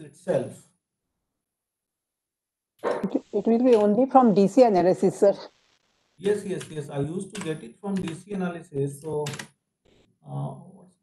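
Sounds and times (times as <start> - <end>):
man speaking: 0.0 - 0.6, 6.2 - 9.4, 10.3 - 10.9.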